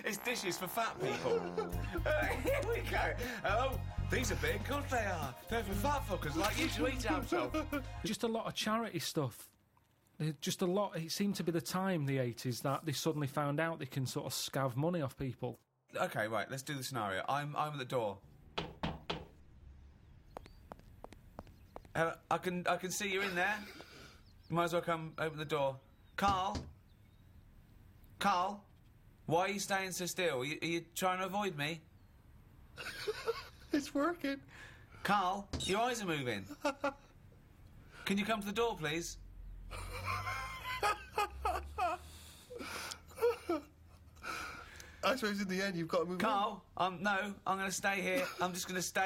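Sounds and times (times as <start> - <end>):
men laughing wheezily: 0.9 - 3.6, 32.8 - 33.8, 39.7 - 44.6
breathy gasps: 34.5 - 35.0, 44.2 - 45.0.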